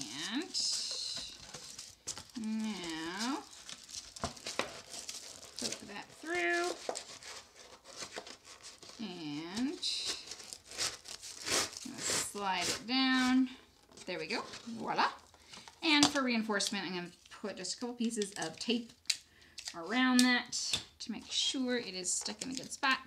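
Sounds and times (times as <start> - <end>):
foil and paper plate crinkling: 0.0 - 17.4.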